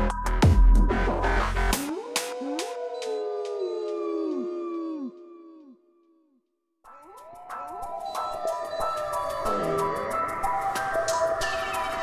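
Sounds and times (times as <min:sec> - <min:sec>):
dogs howling: 0:01.8 - 0:06.2, 0:06.9 - 0:12.0.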